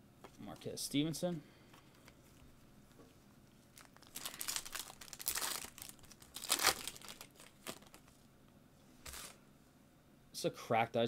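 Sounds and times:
foil wrapper crinkling and tearing: 0:03.7 - 0:08.2, 0:09.0 - 0:09.4.

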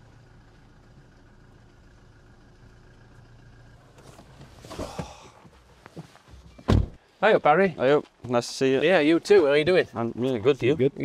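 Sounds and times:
truck engine humming: 0:00.0 - 0:11.0.

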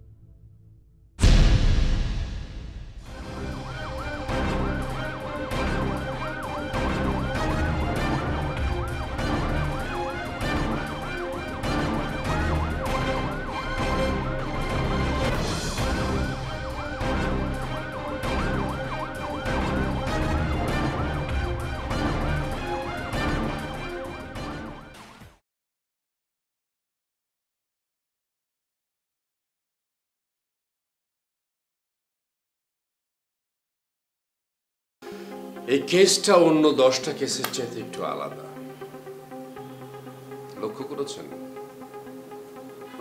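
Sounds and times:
music with pounding beat: 0:01.2 - 0:25.3
wailing police siren: 0:03.1 - 0:24.9.

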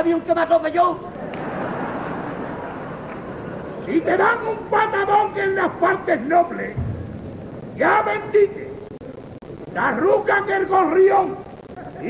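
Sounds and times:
audience applauding and laughing: 0:01.2 - 0:03.9.

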